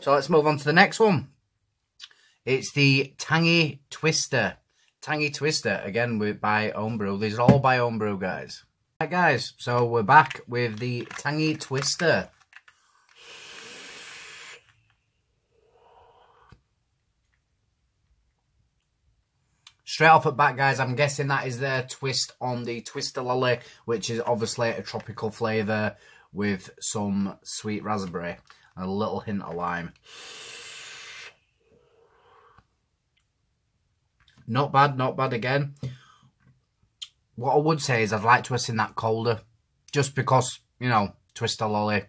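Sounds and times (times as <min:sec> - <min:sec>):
breathy exhale: 0:12.8 - 0:14.8, 0:15.4 - 0:16.6, 0:30.0 - 0:32.7
vape draw hiss: 0:12.9 - 0:14.8, 0:30.0 - 0:31.4.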